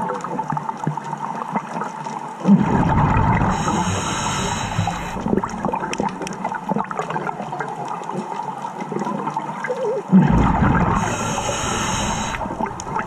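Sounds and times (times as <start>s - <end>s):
crackling clicks underwater: 0.0s - 13.0s
bubbly exhaled breath underwater: 2.4s - 7.7s, 8.9s - 13.0s.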